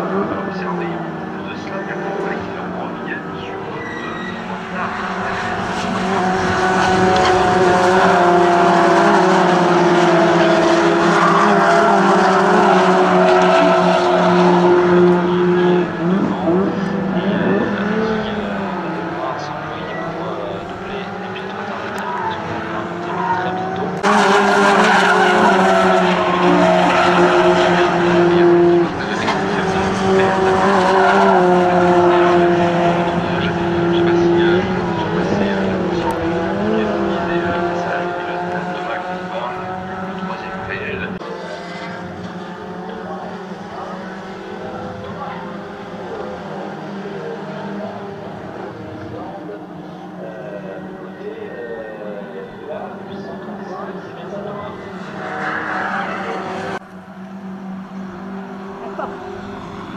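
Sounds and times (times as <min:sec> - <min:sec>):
race car engines revving: 0:00.0 - 0:59.9.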